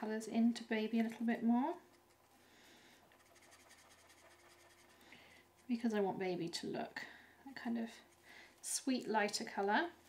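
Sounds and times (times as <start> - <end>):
marker nib scratching on card: 3.2 - 5.0.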